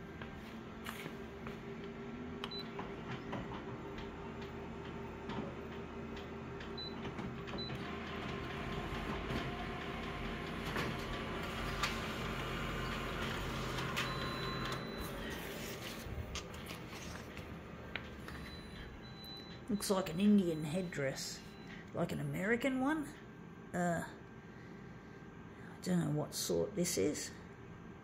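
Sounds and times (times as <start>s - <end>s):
copier whine and whirr: 0.0s - 28.0s
copier beeps: 2.4s - 22.0s.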